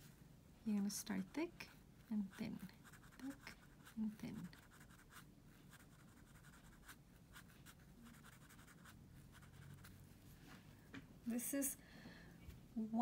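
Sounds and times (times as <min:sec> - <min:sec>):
marker scratching on paper: 0:02.1 - 0:10.0.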